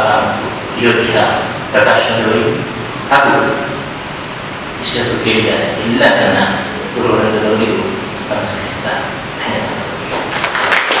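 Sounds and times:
audience applause: 10.2 - 11.0.

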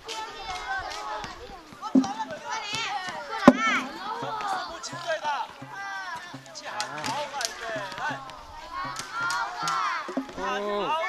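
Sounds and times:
children talking and calling out: 0.0 - 11.0
sharp knocks: 1.8 - 5.8, 8.9 - 10.5.

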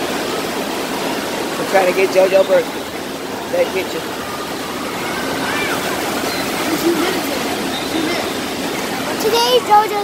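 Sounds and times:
waves breaking and churning: 0.0 - 10.0.

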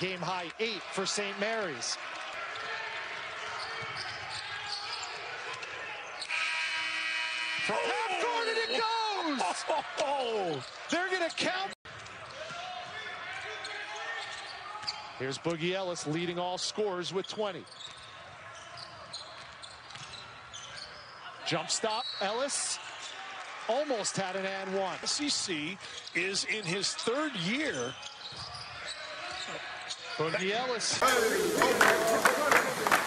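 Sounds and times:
sneaker squeaks: 3.4 - 6.4, 13.4 - 15.2, 17.2 - 22.4, 27.7 - 30.5
arena horn buzzing: 6.3 - 7.8.

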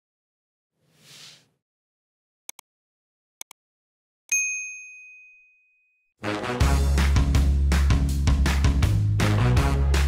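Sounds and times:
notification bell ding: 4.3 - 5.9.

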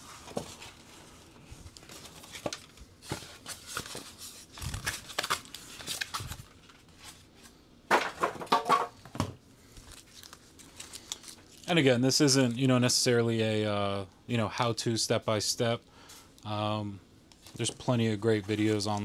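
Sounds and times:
plastic wrap crinkling: 9.7 - 11.9.

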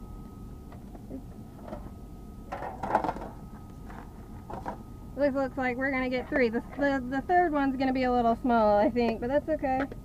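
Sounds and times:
faint high whine: 0.0 - 10.0
steady low hum: 0.0 - 10.0
rustling clatter of foil pans: 2.5 - 4.8.

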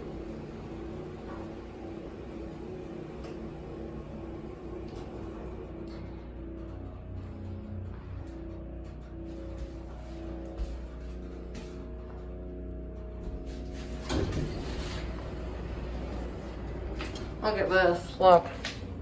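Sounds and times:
elevator doors sliding open: 0.0 - 10.4, 13.4 - 19.0
elevator low hum: 0.0 - 19.0.

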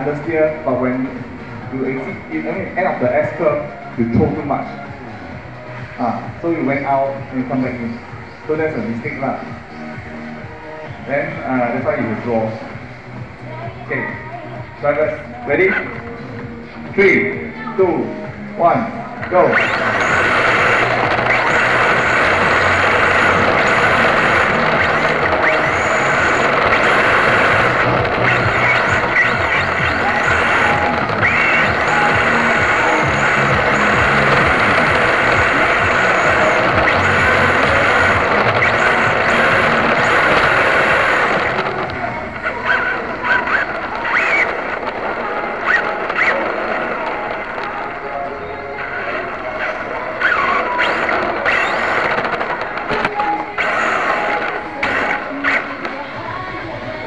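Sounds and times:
rc car motor and rattling chassis: 19.5 - 47.8, 48.8 - 55.7.

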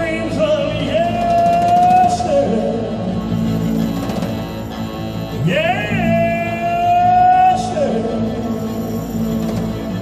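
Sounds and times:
live band playing slow song: 0.0 - 10.0
man singing high held note: 5.4 - 8.3.

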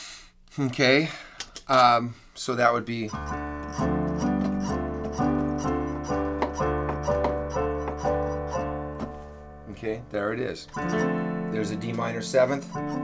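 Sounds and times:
keyboard chords: 3.0 - 13.0.

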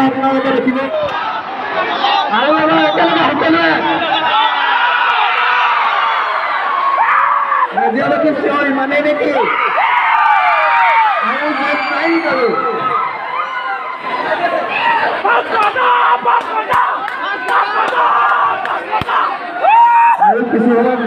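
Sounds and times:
crowd cheering and shouting: 0.0 - 21.0.

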